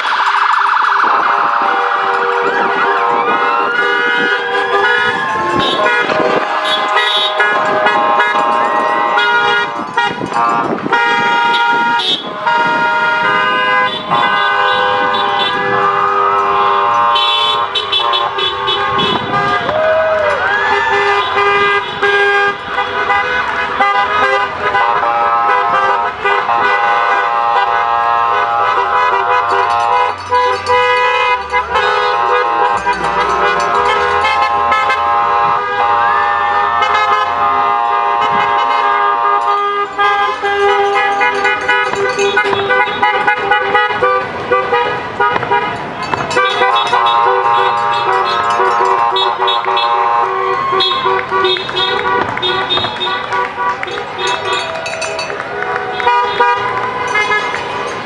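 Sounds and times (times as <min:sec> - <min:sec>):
car horns honking: 0:00.0 - 0:58.0.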